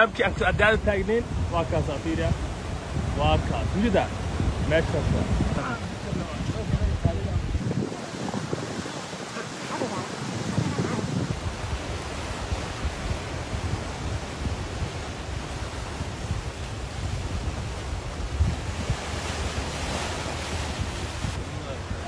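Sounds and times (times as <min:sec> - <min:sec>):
sea surf against rocks: 0:00.0 - 0:22.0
wind gusting on microphone: 0:00.0 - 0:22.0.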